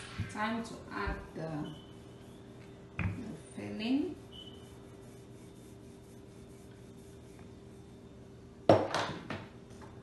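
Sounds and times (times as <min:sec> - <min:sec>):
dough rubbing on wooden table: 0:00.9 - 0:08.1
rolling pin knocking on table: 0:08.7 - 0:09.4.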